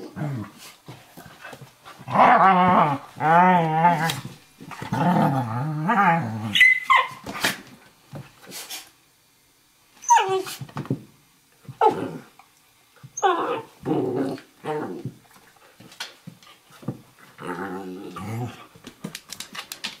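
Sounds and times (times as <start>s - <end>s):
dogs growling and yelping: 2.0s - 7.3s, 11.8s - 12.3s, 13.2s - 15.1s, 17.2s - 18.7s.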